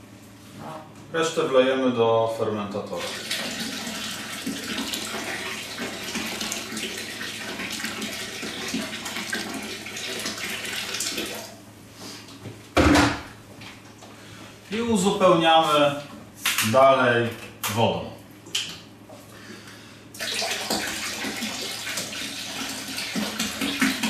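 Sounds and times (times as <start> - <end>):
tap water running into bucket: 3.0 - 11.6, 20.1 - 24.0.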